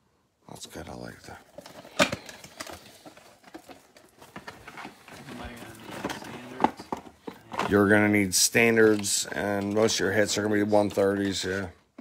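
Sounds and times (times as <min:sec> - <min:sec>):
plastic wrap crinkling and tearing: 0:01.5 - 0:11.6
box knocking: 0:04.4 - 0:08.2.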